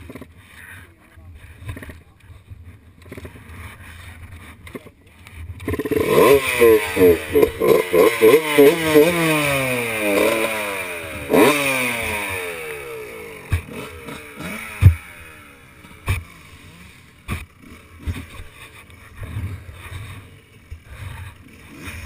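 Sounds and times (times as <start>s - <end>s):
distant bike engine: 0.0s - 22.0s
dirt bike engine revving: 5.5s - 22.0s.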